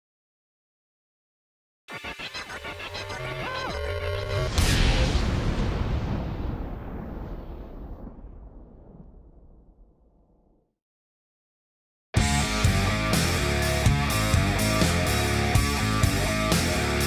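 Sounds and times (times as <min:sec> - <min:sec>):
rhythmic musical build-up: 0:01.9 - 0:04.5
loud explosion-like boom: 0:04.5 - 0:10.7.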